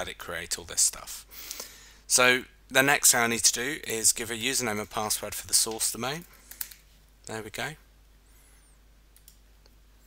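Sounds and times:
computer mouse clicks: 6.4s - 6.8s, 9.2s - 9.8s.

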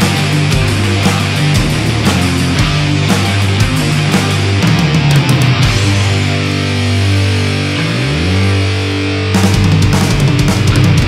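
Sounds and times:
electric guitars sustained chords: 0.0s - 11.0s.

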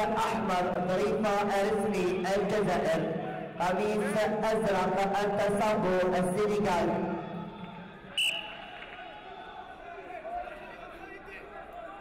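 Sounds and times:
murmur of sports hall crowd: 0.0s - 12.0s
referee's whistle blast: 8.1s - 8.8s.

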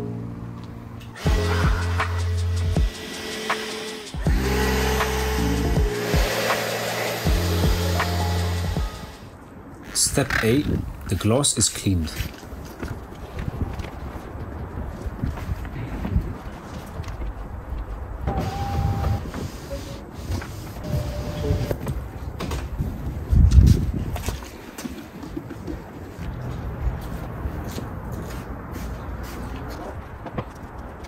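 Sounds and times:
cloth wiping car window: 5.8s - 9.2s, 18.4s - 21.8s.

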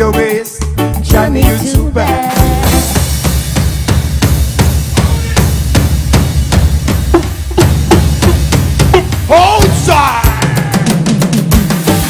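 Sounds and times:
bass line: 0.0s - 11.0s
drum kit beat: 0.0s - 12.0s.

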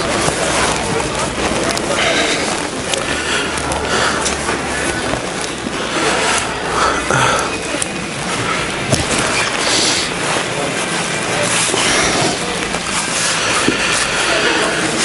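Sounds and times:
indistinct voices: 0.0s - 15.0s
rustling and scraping on microphone: 7.9s - 15.0s.

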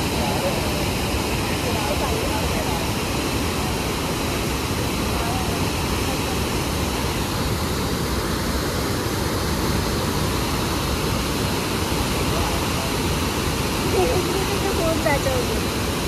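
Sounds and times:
water rushing over weir: 0.0s - 16.0s.

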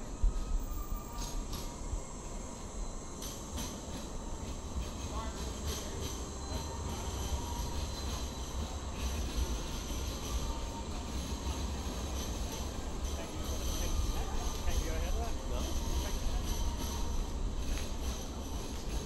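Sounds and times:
tram passing: 0.0s - 19.0s.

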